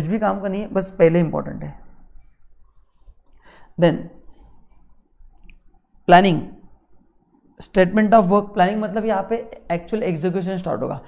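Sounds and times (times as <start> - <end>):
person speaking: 0.0 - 2.2, 3.7 - 4.3, 5.5 - 6.7, 7.6 - 11.0.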